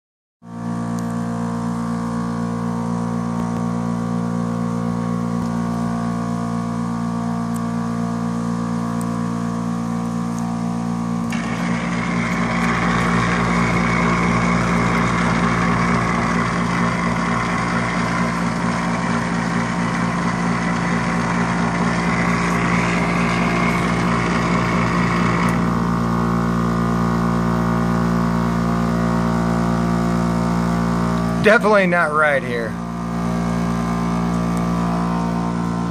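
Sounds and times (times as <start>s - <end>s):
dehumidifier humming: 0.6s - 35.9s
fan air rushing: 8.1s - 35.9s.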